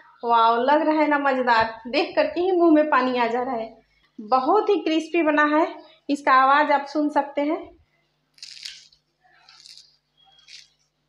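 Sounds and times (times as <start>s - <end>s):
fried crust crunching: 8.3s - 10.9s.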